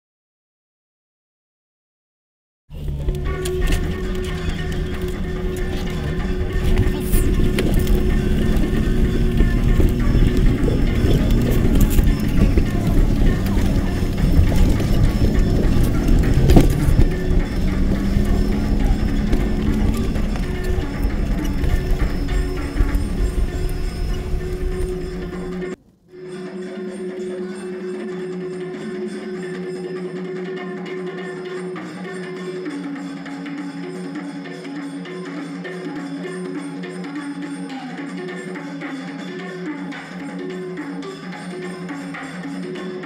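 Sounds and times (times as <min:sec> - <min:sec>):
vehicle engine and road rumble: 0:02.7 - 0:25.8
music: 0:02.7 - 0:43.0
vehicle jolts and rattles: 0:02.8 - 0:25.8.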